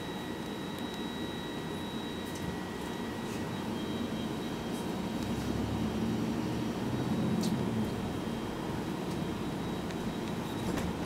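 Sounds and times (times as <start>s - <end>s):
bus engine and tyres rumbling: 3.3s - 11.0s.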